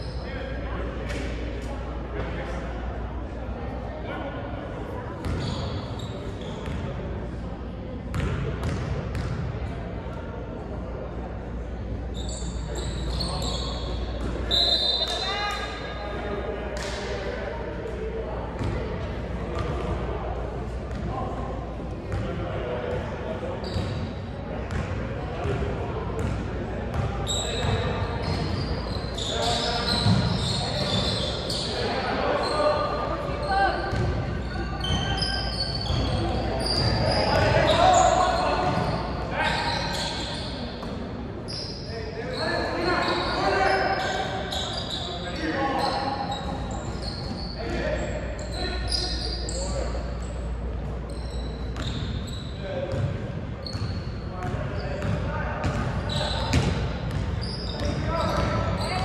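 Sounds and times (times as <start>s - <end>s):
shouts and chatter echoing: 9.5s - 59.0s.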